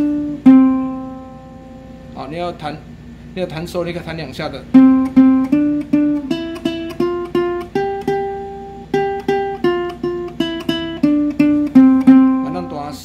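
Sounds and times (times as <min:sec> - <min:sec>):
ukulele plucking a scale: 0:00.0 - 0:02.0, 0:04.7 - 0:13.0.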